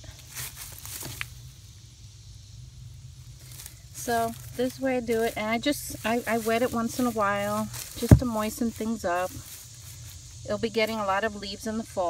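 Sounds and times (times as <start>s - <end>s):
straw rustling and crackling: 0.0s - 1.4s, 3.2s - 11.2s
low steady rumble: 0.0s - 12.0s.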